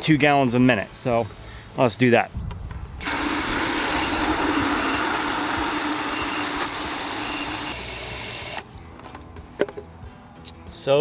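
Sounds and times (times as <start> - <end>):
water spraying into plastic bucket: 3.0 - 7.7.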